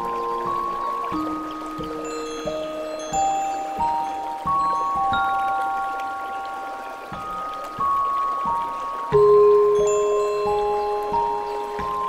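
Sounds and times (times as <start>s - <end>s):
running water hiss: 0.0s - 12.0s
bell-like chime notes: 0.6s - 12.0s.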